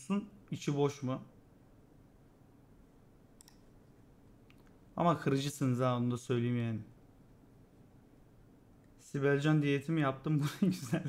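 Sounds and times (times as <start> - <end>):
faint computer mouse clicks: 3.4 - 3.7.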